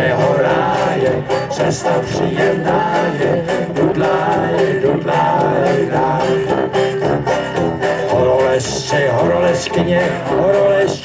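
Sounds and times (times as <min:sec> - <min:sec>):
banjos strumming: 0:00.0 - 0:11.0
sousaphone bass line: 0:00.0 - 0:11.0.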